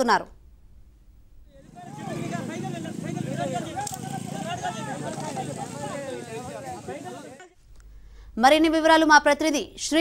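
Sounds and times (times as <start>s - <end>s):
people talking over one another: 1.5s - 7.6s.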